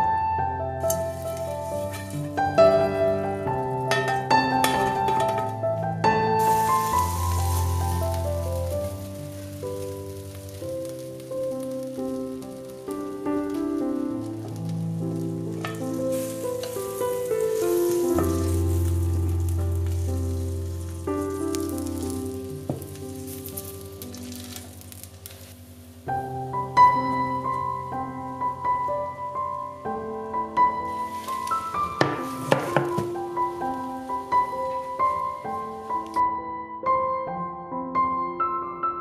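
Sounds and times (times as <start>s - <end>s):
instrumental background music: 0.0s - 39.0s
batter sizzling in a frying pan: 0.8s - 36.2s.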